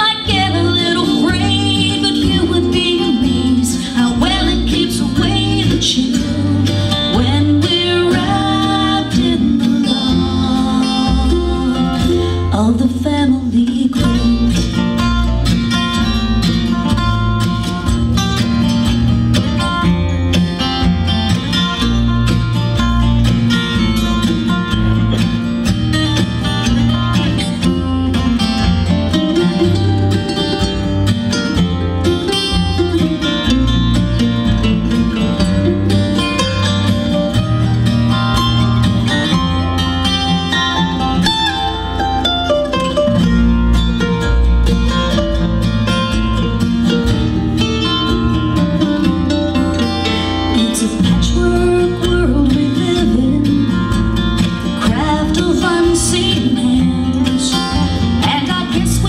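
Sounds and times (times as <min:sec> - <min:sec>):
acoustic guitars: 0:00.0 - 0:59.0
mandolin: 0:00.0 - 0:59.0
upright bass: 0:00.0 - 0:59.0.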